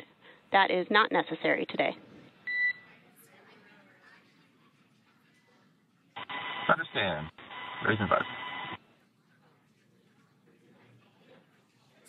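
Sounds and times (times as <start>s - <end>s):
faint radio hiss: 0.0s - 12.0s.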